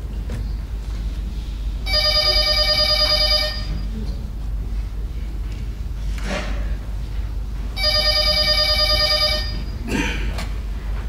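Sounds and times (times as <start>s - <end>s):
steady low hum: 0.0s - 11.0s
telephone bell ringing: 1.9s - 3.8s, 7.8s - 9.7s.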